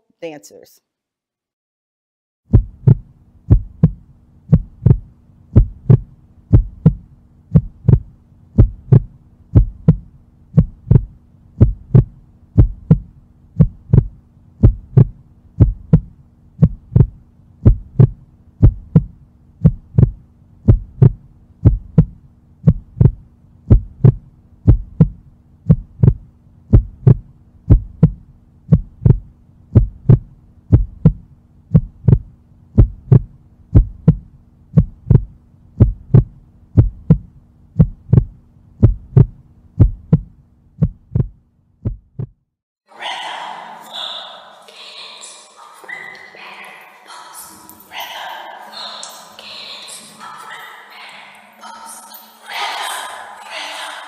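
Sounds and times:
faint steady hum: 2.5 - 42.0
deep thumping beat: 2.5 - 42.4.

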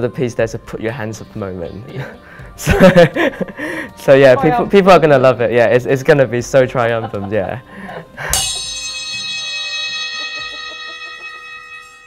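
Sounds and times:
hand cymbal ringing: 8.2 - 12.0.

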